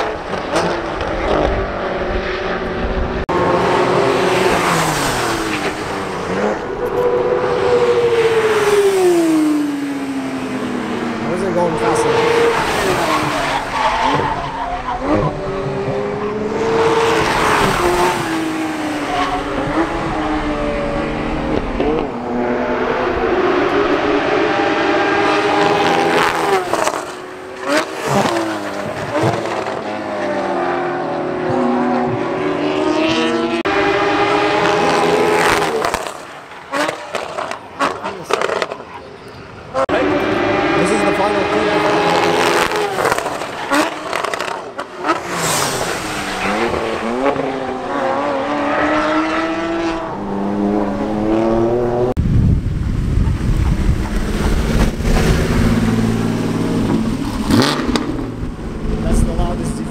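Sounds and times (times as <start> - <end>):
race cars driving past: 0.0 - 52.2.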